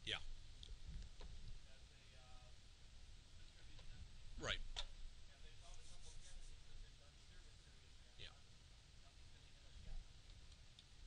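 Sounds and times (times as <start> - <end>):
low room noise: 0.0 - 11.0
faint clicks: 10.2 - 10.9.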